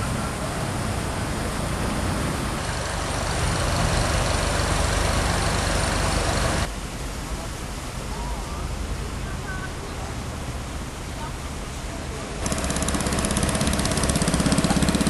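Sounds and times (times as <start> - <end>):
motor engine running: 12.4 - 15.0.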